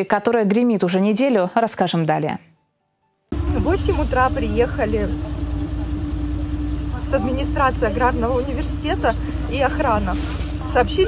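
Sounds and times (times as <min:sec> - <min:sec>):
low mechanical hum: 0:03.3 - 0:11.0.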